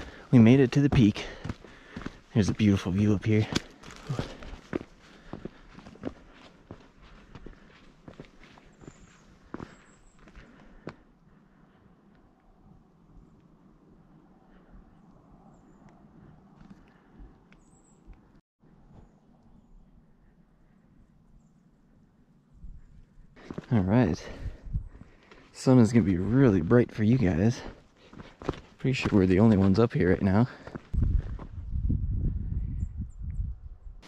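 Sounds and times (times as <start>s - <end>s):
footsteps on rock: 0.0s - 11.0s, 23.4s - 25.4s, 26.5s - 29.8s, 30.4s - 31.5s.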